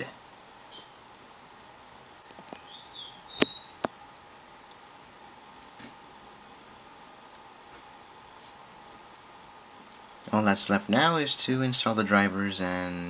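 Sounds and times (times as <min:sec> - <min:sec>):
low hiss: 0:00.0 - 0:13.0
high-pitched chirps: 0:06.7 - 0:07.2.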